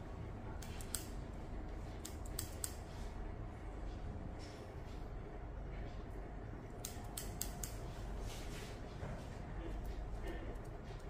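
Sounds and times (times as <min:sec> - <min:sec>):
scissors snipping hair: 0:00.6 - 0:01.2, 0:02.0 - 0:02.9, 0:06.7 - 0:07.9.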